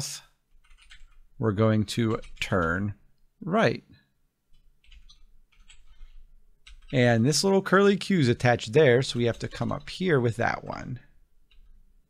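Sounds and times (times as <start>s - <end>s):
computer keyboard typing: 0.5s - 1.3s, 2.0s - 2.9s, 4.5s - 7.2s, 8.3s - 11.9s.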